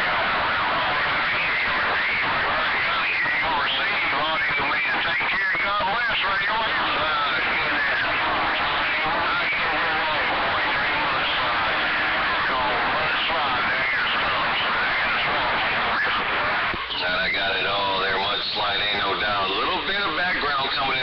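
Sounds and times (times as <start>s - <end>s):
garbled radio voice: 0.0s - 21.0s
radio static hiss: 0.0s - 21.0s.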